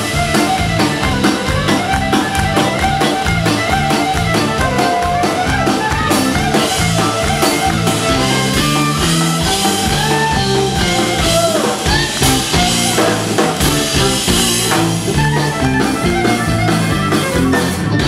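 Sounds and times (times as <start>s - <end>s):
live band playing country-rock: 0.0s - 18.0s.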